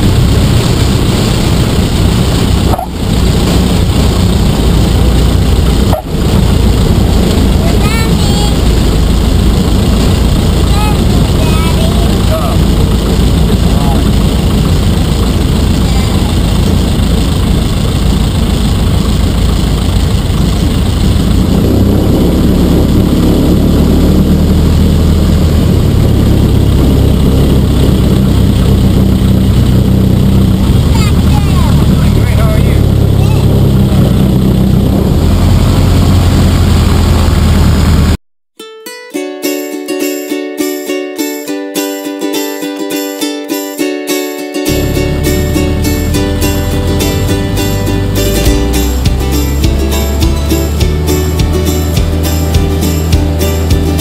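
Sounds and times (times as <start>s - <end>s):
propeller plane engine running: 0.0s - 38.2s, 44.6s - 54.0s.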